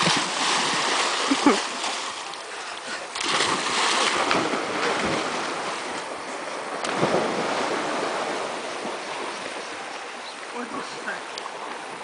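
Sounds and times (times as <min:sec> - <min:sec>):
rushing stream water: 0:00.0 - 0:12.0
water splashing: 0:00.0 - 0:12.0.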